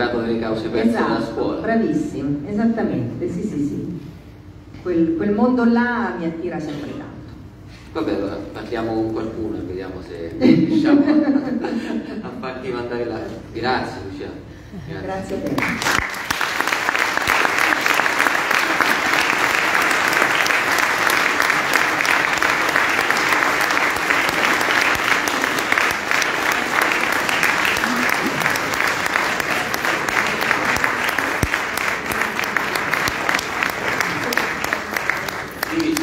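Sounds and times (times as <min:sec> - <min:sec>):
audience applause: 0:15.5 - 0:36.0.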